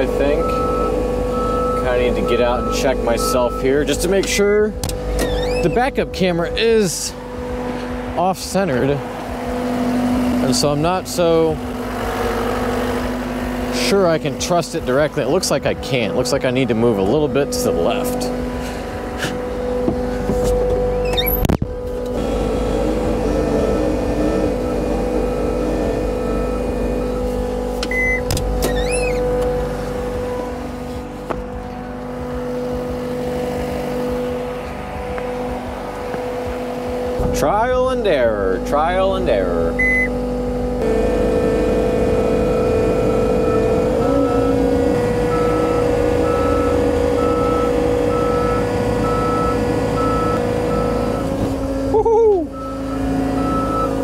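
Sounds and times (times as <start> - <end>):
diesel engine idling: 0.0 - 54.0
backup alarm beeps: 0.4 - 3.7, 23.3 - 29.4, 39.8 - 40.2, 42.4 - 44.6, 45.3 - 51.3, 52.5 - 54.0
short high beep: 39.8 - 40.1.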